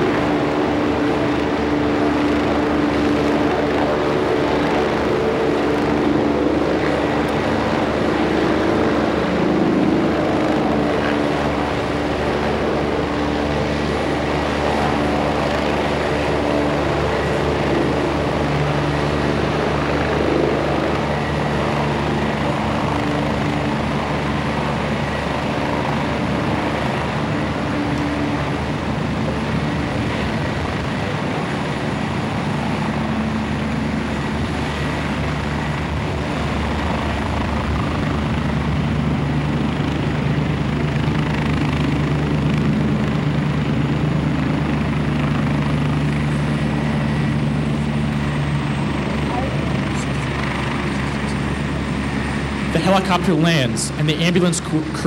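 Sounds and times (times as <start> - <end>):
helicopter rotor and engines: 0.0 - 55.0
high turbine whine: 0.0 - 55.0.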